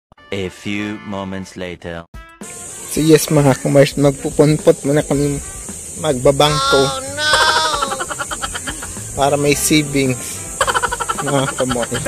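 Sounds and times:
comic bleating cry: 6.4 - 9.1, 10.6 - 12.0.

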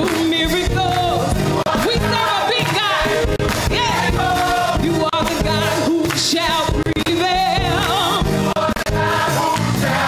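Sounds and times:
gospel choir singing: 0.6 - 10.0.

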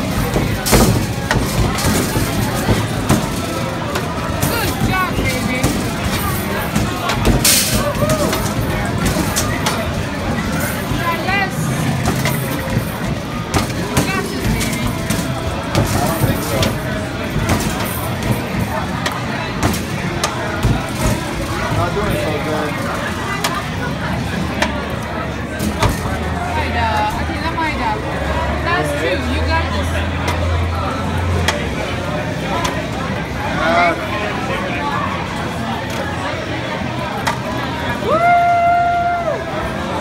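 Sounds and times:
bar chatter: 0.0 - 40.0.

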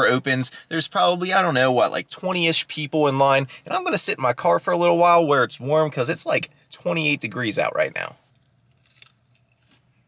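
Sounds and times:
person chewing crispy food: 8.3 - 9.9.

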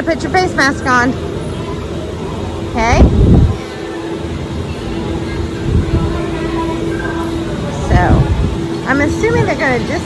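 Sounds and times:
low hum of gondola machinery: 0.0 - 10.0
wind rumble on microphone: 2.8 - 3.7, 5.6 - 6.5, 7.8 - 10.0.

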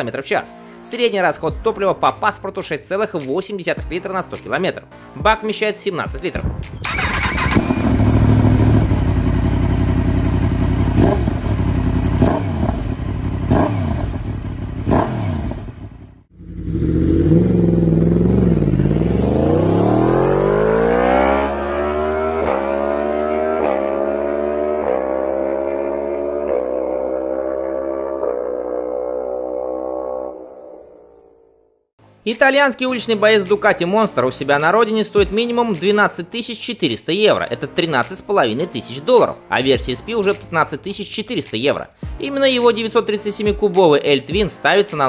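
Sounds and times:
motorcycle engine revving: 6.8 - 30.5
motorcycle accelerating: 6.8 - 31.3.

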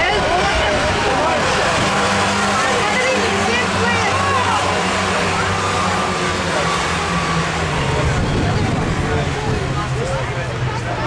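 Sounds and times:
spectators' voices: 0.0 - 11.0
stock car engines droning: 0.0 - 11.0.

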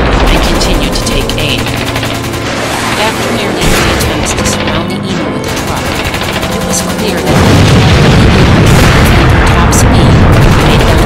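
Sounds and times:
booming explosions: 0.0 - 11.0
gunfire: 0.0 - 11.0
music: 0.0 - 11.0.

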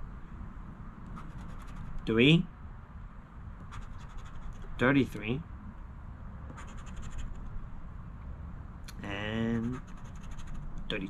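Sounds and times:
scratching lottery ticket: 1.2 - 2.0, 6.6 - 7.4, 9.6 - 10.7.

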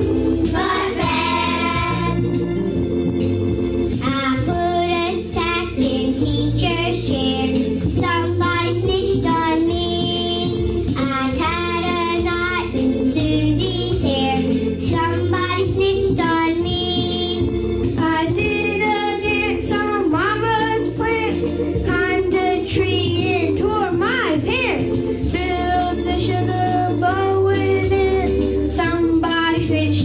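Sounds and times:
instrumental backing music: 0.0 - 30.0
girl singing: 4.0 - 17.4, 18.0 - 30.0.

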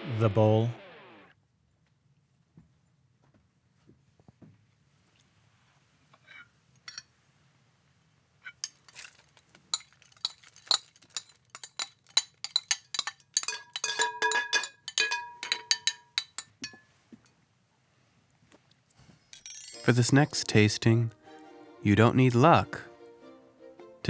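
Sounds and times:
china clinking against glass bowl: 8.6 - 16.9, 19.3 - 20.6
dry cereal rattling into bowl: 8.7 - 13.8.

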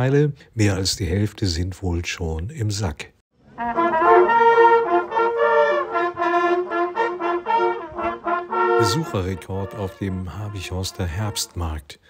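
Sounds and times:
hunting horns playing fanfare: 3.6 - 11.8.

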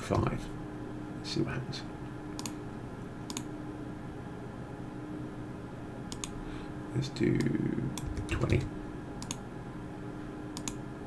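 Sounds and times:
faint room tone hum: 0.0 - 11.0
computer mouse clicks: 2.4 - 2.6, 3.3 - 3.5, 6.1 - 6.4, 7.4 - 8.6, 9.2 - 9.4, 10.5 - 10.8.

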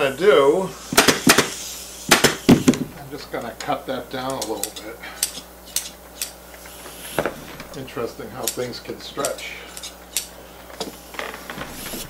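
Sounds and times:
scissors snipping: 8.4 - 10.3.

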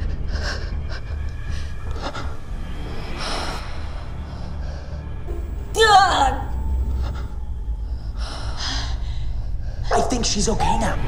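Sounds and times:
low rumble: 0.0 - 10.6.

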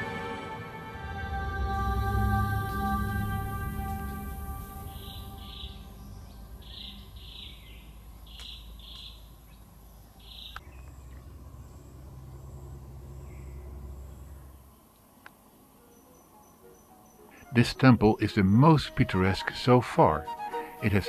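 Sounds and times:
low hum: 0.0 - 15.8
faint insect buzz: 1.6 - 7.5.

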